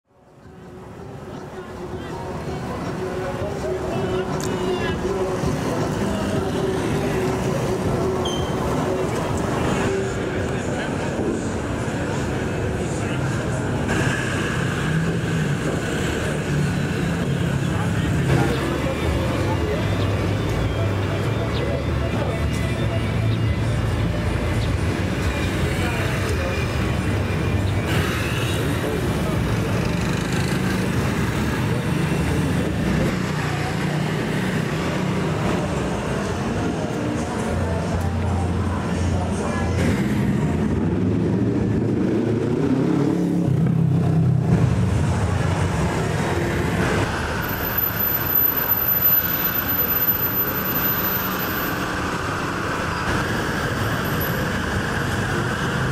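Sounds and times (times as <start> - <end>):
motorbike and car traffic: 0.1 - 55.9
people's voices: 0.1 - 55.9.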